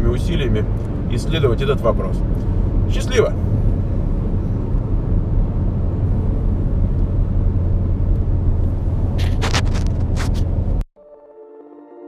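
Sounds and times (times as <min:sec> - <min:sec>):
car driving inside cabin rumble: 0:00.0 - 0:10.8.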